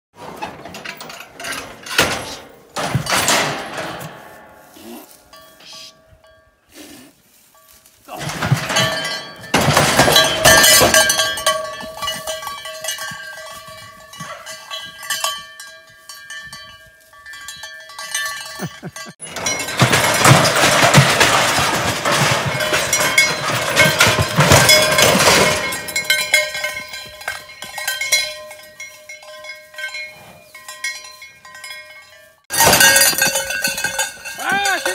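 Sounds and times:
metal chute clangs: 0.2 - 4.7, 8.1 - 15.2, 18.1 - 28.5, 32.5 - 34.9
cowbell clanking and ringing: 0.8 - 34.9.

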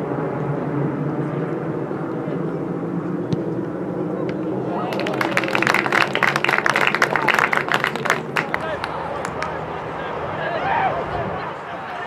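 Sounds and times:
low outdoor background noise: 0.0 - 12.0.

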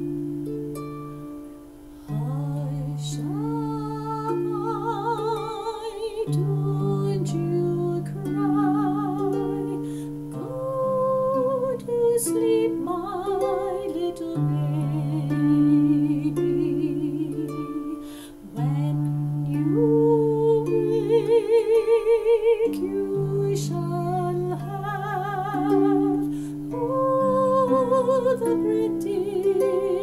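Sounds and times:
harp playing a slow lullaby: 0.0 - 30.0
woman singing wordless melody: 0.0 - 30.0.

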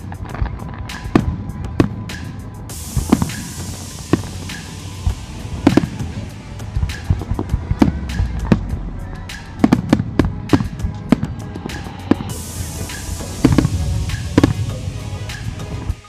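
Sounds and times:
fireworks bursting: 0.0 - 16.0
music: 0.0 - 16.0
steady high hiss: 0.0 - 16.0.

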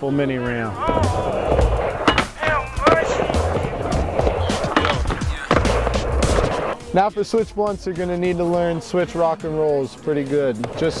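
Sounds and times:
background music: 0.0 - 11.0
skateboard wheels rolling on ramp: 0.5 - 6.8
skateboard knocks: 0.8 - 6.8.

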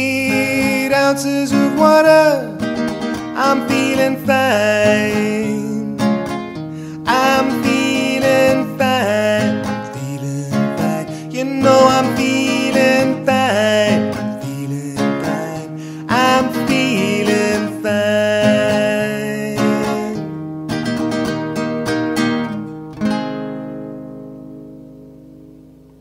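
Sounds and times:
acoustic guitar strumming with melody: 0.0 - 26.0.

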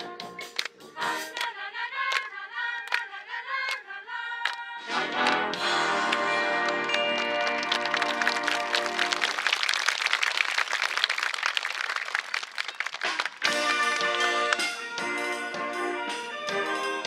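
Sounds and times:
applause: 2.1 - 3.0, 5.2 - 14.7
marching band sustained chord: 4.9 - 9.3.

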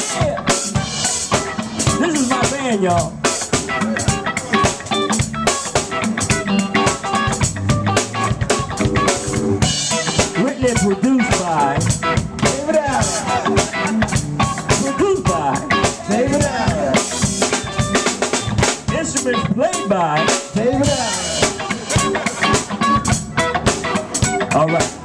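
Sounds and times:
live band playing: 0.0 - 25.0
man singing into microphone: 14.9 - 17.1.

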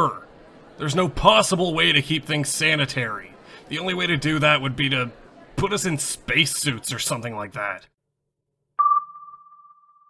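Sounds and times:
high ping tone: 8.8 - 10.0.

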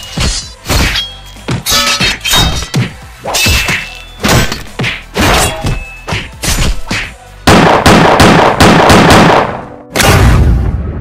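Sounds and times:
music: 0.0 - 11.0
fight hits and thuds: 0.1 - 9.3.

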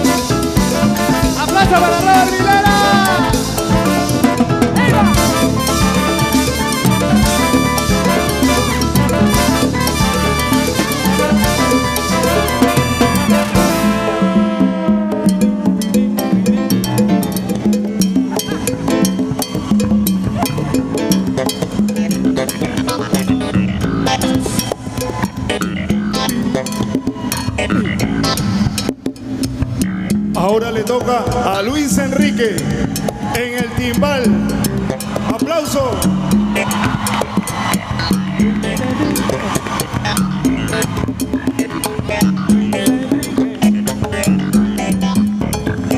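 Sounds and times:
bass and percussion groove: 0.0 - 45.9
salsa band playing: 0.0 - 45.9.

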